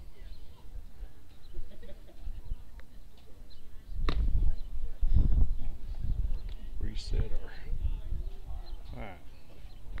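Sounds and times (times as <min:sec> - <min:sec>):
wind buffeting microphone: 0:03.6 - 0:10.0.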